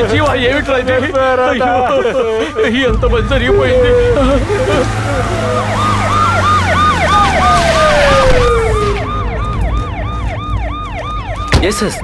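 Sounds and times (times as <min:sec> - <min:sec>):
low vehicle engine rumble: 0:00.0 - 0:11.5
emergency siren fast yelp: 0:01.4 - 0:12.0
long tone gliding downward: 0:01.8 - 0:11.5.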